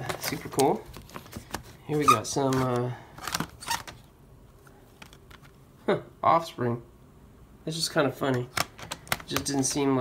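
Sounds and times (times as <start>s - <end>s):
plastic cd cases clacking: 0.0s - 4.1s, 4.9s - 5.6s, 8.2s - 9.9s.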